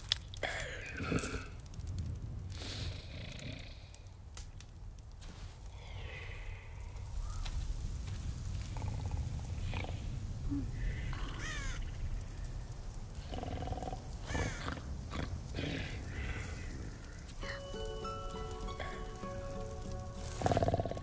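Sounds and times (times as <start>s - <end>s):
wind rumbling: 0.0s - 21.0s.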